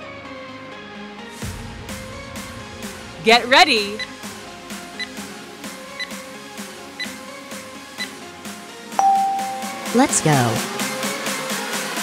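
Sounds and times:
background music: 0.0 - 12.0
timer short high beeps: 9.0 - 10.0.

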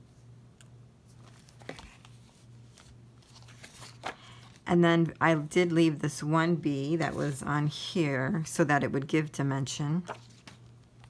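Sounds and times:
low steady hum: 0.0 - 11.0
pages rustling: 1.1 - 5.7, 10.0 - 11.0.

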